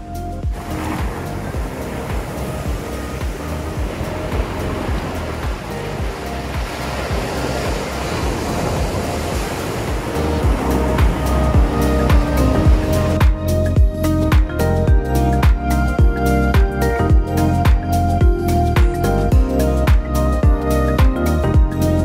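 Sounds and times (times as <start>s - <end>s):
background music with a beat: 0.0s - 22.0s
small waves washing on sand: 0.5s - 13.4s.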